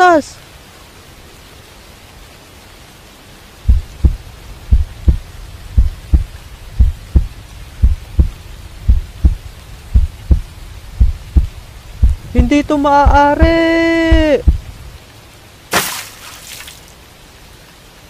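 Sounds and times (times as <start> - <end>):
rain hissing: 0.0 - 18.0
heartbeat thumps: 3.7 - 14.9.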